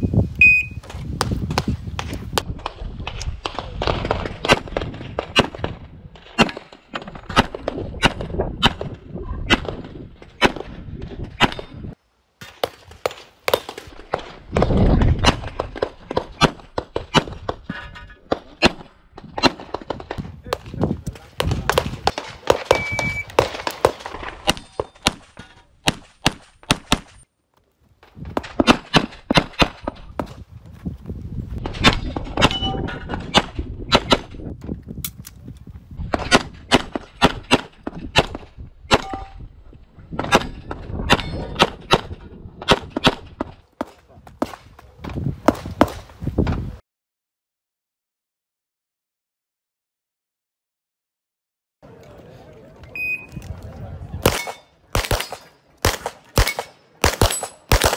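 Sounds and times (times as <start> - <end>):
pistol shots: 20.5 - 27.2, 54.2 - 57.9.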